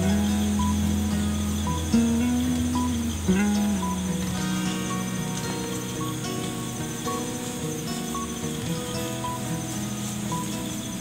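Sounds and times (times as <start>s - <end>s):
high cricket trill: 0.0s - 11.0s
slow sustained background music: 0.0s - 11.0s.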